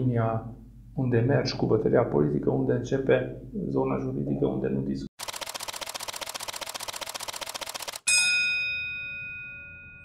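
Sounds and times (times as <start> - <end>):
fast even ticking: 5.2 - 8.1
bright bell-like ding: 8.1 - 10.0.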